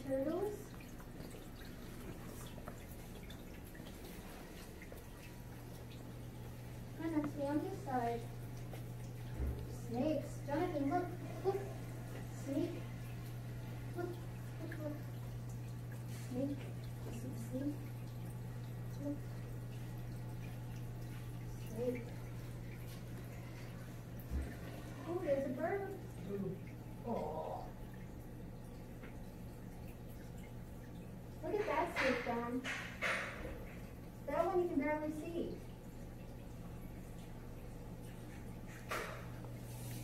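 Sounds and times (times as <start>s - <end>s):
aquarium water trickling: 0.0s - 40.0s
low electrical hum: 0.0s - 40.0s.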